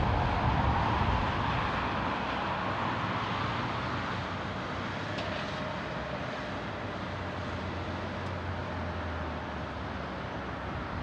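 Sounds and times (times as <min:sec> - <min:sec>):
jet engine rushing: 0:00.0 - 0:03.2.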